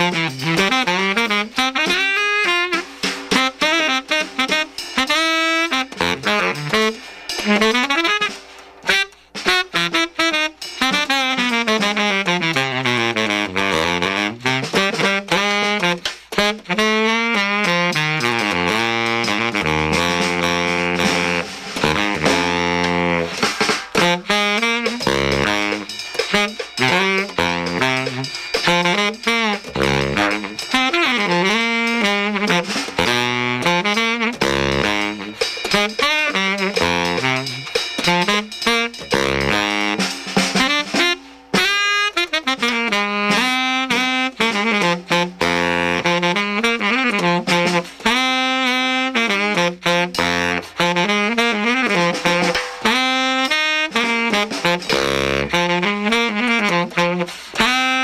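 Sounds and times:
baritone saxophone jazz line: 0.0s - 58.0s
drum and cymbal strikes: 0.0s - 58.0s.

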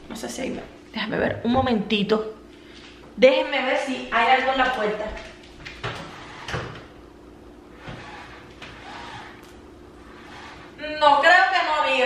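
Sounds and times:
window shade knocking and rustling: 5.6s - 7.0s, 7.8s - 10.8s.

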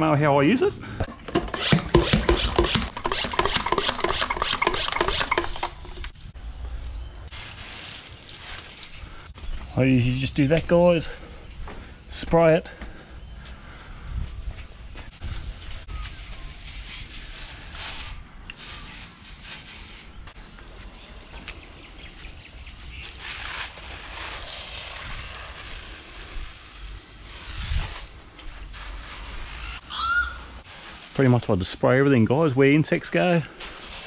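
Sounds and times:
handling clicks and knocks: 1.0s - 6.2s
pressure sprayer hissing: 1.4s - 6.0s, 15.4s - 29.6s, 30.4s - 34.0s.

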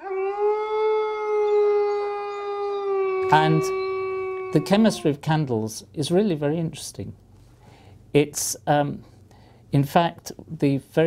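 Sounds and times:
long howl: 0.0s - 5.2s.

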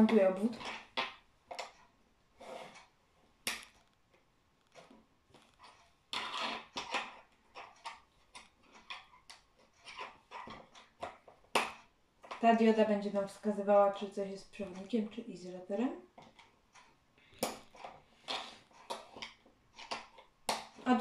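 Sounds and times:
plastic pieces clicking: 16.2s - 21.0s.

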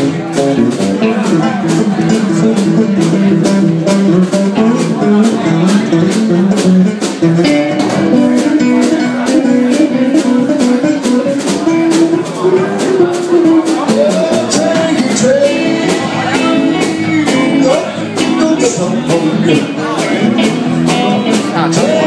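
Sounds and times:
drum kit beat on cymbals: 0.0s - 22.0s
guitar lines: 0.0s - 22.0s.

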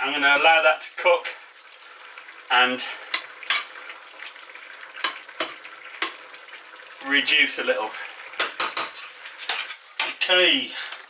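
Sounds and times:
metal ladle scraping saucepan: 8.4s - 10.3s.

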